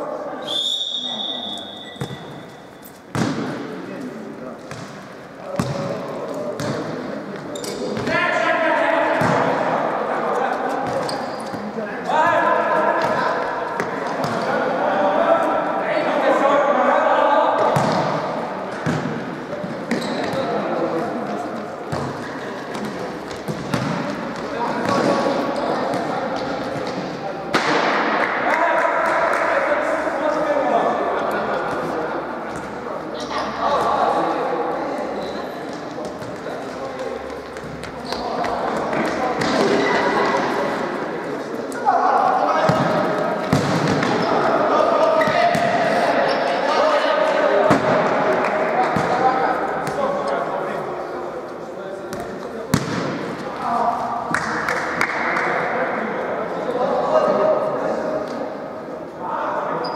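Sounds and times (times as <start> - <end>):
referee's whistle: 0.4 - 2.6.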